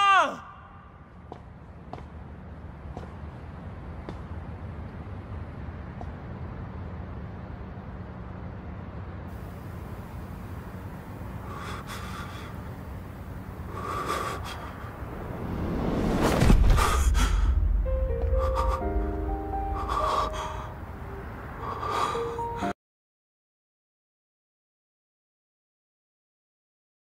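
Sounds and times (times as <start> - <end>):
low rumble: 14.4 - 21.0
whoosh: 15.0 - 18.1
dramatic orchestral score: 16.1 - 21.2
man gasping: 16.8 - 20.8.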